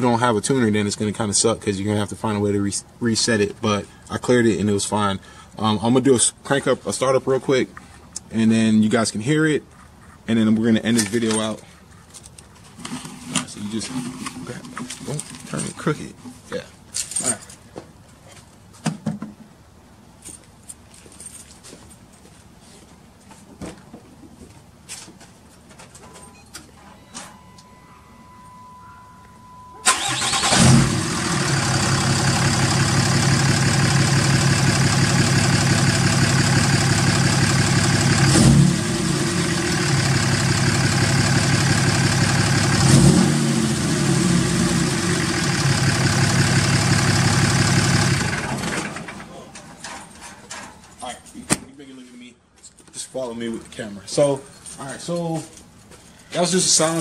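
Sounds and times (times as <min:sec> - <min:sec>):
diesel engine idling and revving: 0:29.9 - 0:49.3.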